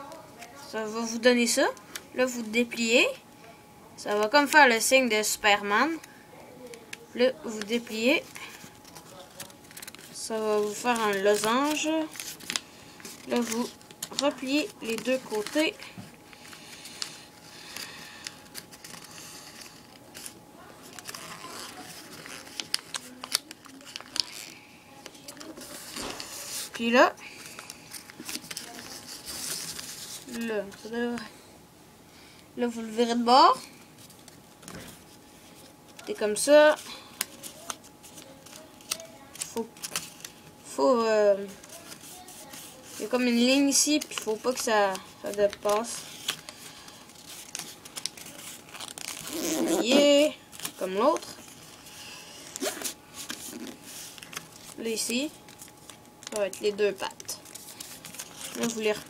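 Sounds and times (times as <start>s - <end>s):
paper rustling and crinkling: 7.4s - 31.2s, 33.9s - 40.7s, 41.3s - 59.0s.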